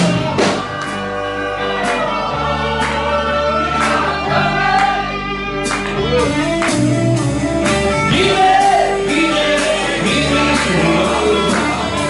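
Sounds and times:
drum hits: 0.0s - 1.0s
bass and electric guitars: 0.0s - 12.0s.

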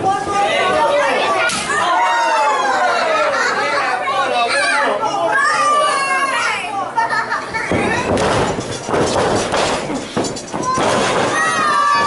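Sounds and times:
crowd shouting: 0.0s - 3.6s, 10.6s - 12.0s.

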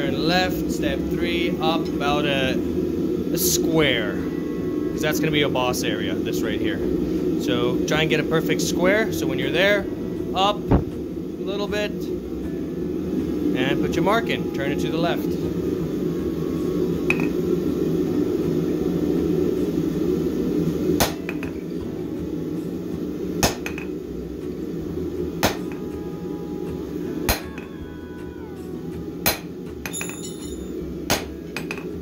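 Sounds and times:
hammer striking hot metal on anvil: 21.0s - 21.5s, 23.4s - 23.9s, 25.4s - 25.8s, 29.2s - 31.9s.

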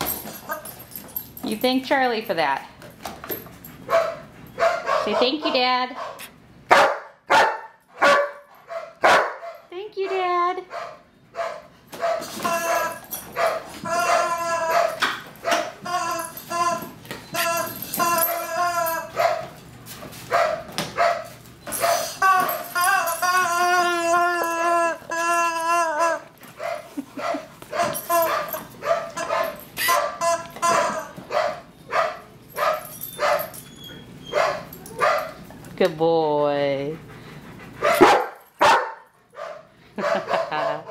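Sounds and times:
dog barking: 3.9s - 12.8s, 13.4s - 15.7s, 20.3s - 22.1s, 26.6s - 33.5s, 34.3s - 35.4s, 37.8s - 40.9s
dog whining: 12.1s - 19.4s, 21.7s - 32.0s, 32.6s - 35.3s
dog yowling: 12.3s - 19.4s, 21.8s - 26.7s.

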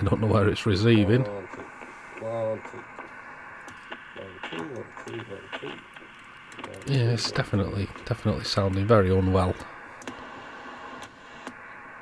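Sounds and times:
muffled voice from radio speaker: 0.0s - 9.8s
radio hiss: 0.0s - 12.0s.

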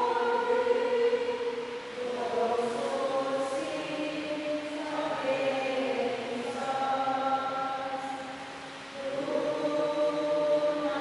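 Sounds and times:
voices singing liturgical chant: 0.0s - 11.0s.

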